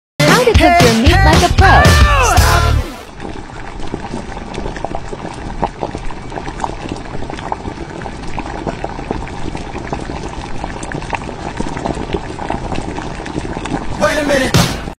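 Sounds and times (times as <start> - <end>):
broth bubbling at a rolling boil: 3.1 - 15.0.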